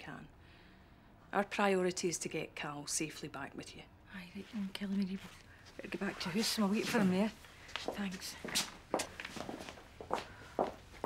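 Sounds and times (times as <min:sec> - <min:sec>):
footsteps of people walking: 0:05.0 - 0:11.0.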